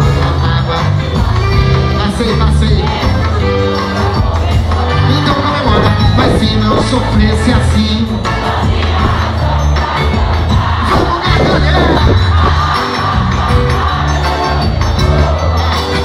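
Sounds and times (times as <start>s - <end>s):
crowd noise: 0.0s - 16.0s
live band playing: 0.0s - 16.0s.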